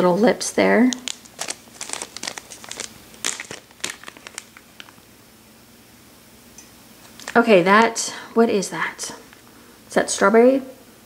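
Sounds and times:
cellophane bag crinkling: 0.8s - 5.1s, 7.0s - 7.9s.

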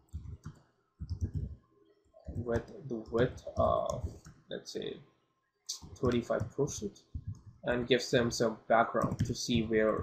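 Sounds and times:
keyboard typing: 0.0s - 1.6s, 2.2s - 4.4s, 5.7s - 7.7s, 9.0s - 10.0s.

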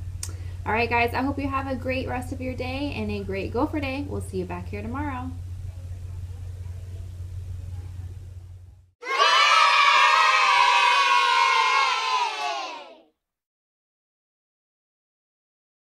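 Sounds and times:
low steady room hum: 0.0s - 12.8s
children cheering and shouting: 9.0s - 13.1s.

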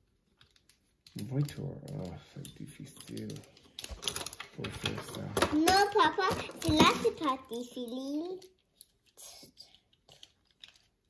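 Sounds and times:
person speaking: 1.1s - 3.7s, 4.4s - 8.4s.

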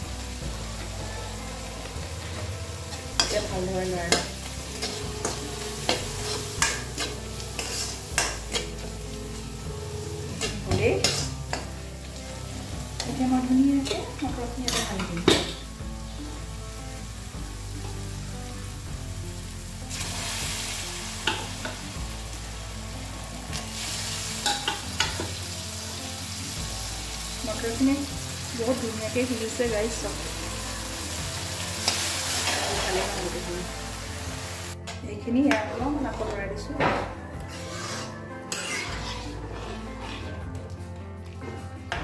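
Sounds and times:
food sizzling in oil: 0.0s - 34.8s, 37.5s - 40.3s
metal ladle scraping pan: 4.1s - 8.9s, 31.8s - 33.3s, 37.4s - 40.6s.

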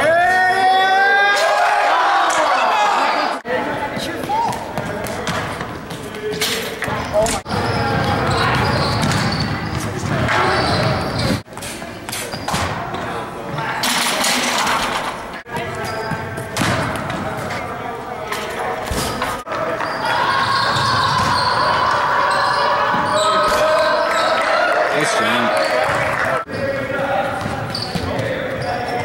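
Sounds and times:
voices and chatter in a gym: 0.0s - 29.0s.

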